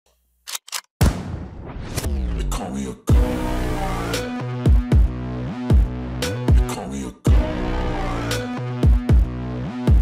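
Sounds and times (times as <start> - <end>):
music: 2.0 - 10.0.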